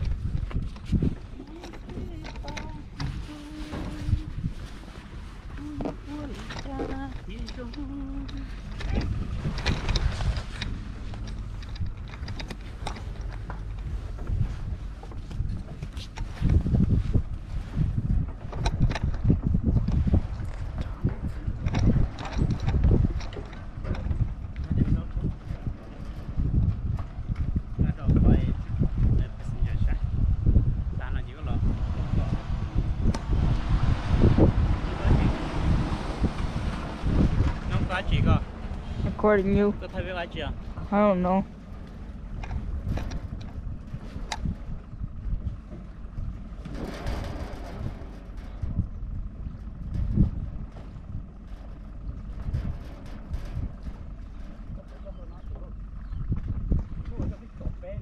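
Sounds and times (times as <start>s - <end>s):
wind rumbling on microphone: 0.0s - 58.0s.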